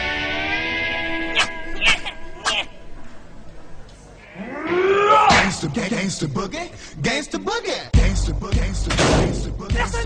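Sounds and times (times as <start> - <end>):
high-pitched cartoon vocal cry: 1.2 - 2.8.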